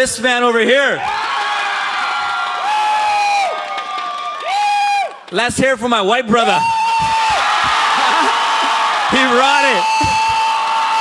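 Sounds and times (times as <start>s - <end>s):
audience cheering: 1.0s - 5.3s, 6.4s - 11.0s
long held whoops: 1.2s - 5.2s, 6.5s - 11.0s.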